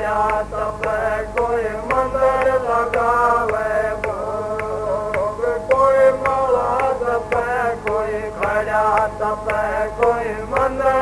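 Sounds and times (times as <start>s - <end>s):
devotional hymn chanting: 0.0s - 11.0s
sustained accompaniment: 0.0s - 11.0s.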